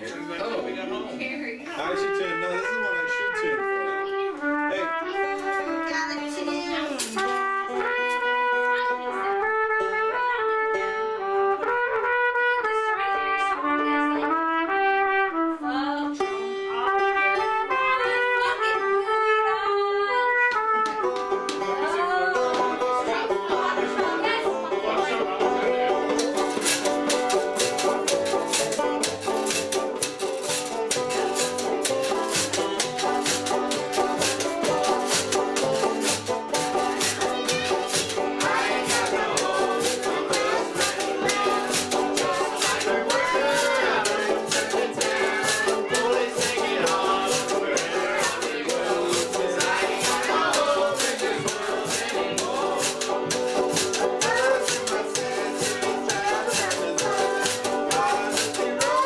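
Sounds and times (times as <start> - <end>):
banjo: 0.0 - 19.3, 20.3 - 59.0
acoustic band playing: 0.0 - 59.0
trumpet melody: 1.7 - 15.8, 16.6 - 21.5, 25.7 - 59.0
shaken percussion beat: 6.9 - 8.4, 26.1 - 59.0.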